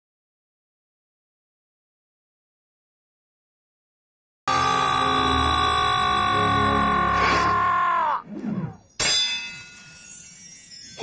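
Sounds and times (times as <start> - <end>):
sharp metallic clang: 8.9 - 10.0.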